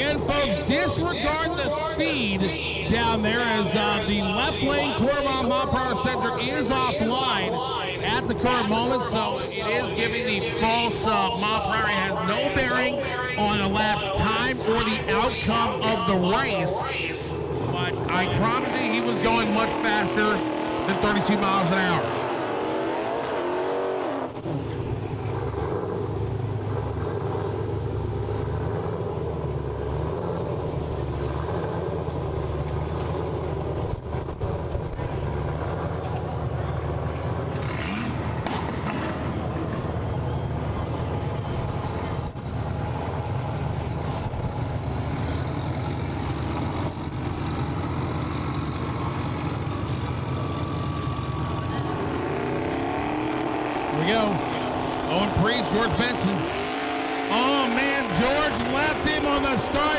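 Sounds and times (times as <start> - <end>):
engine revving and tyre noise: 0.0 - 59.9.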